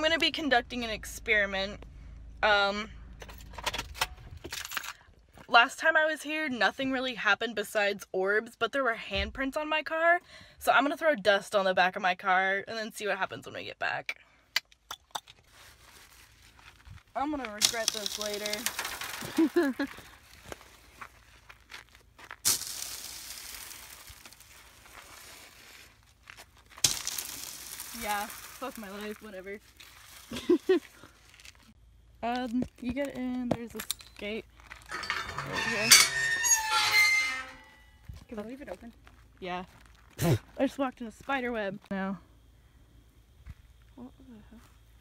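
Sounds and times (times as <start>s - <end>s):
dust rustling: 15.5s - 31.8s
rustling bursts with hiss: 22.4s - 31.3s.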